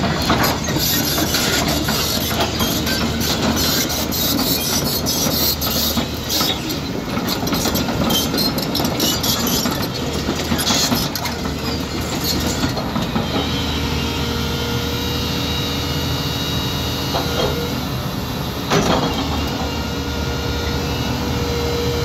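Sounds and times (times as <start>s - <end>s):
steel tracks clanking and rattling: 0.0s - 14.0s, 16.7s - 22.0s
diesel engine running: 9.5s - 22.0s.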